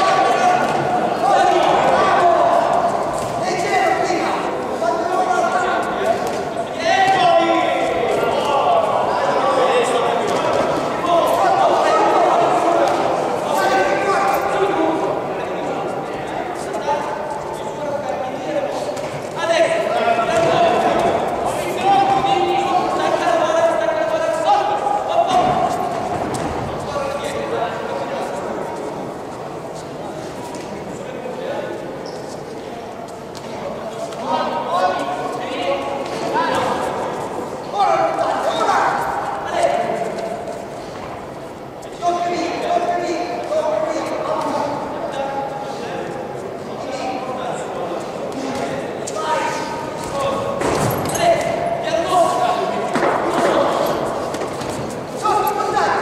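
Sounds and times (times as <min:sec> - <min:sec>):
voices shouting in echoing hall: 0:00.0 - 0:56.0.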